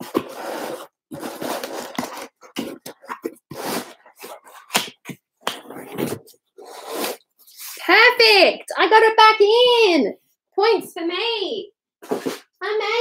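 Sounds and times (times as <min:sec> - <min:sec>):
cardboard box scraping and rustling: 0:00.0 - 0:04.8, 0:12.0 - 0:12.5.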